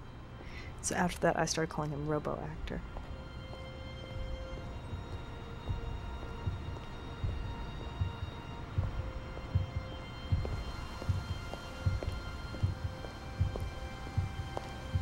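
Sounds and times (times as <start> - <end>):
moody music score: 0.0 - 15.0
slow thudding pulse: 4.2 - 15.0.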